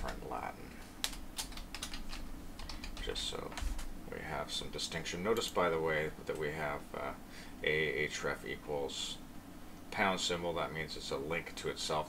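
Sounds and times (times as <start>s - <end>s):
typing on computer keyboard: 1.0s - 3.8s.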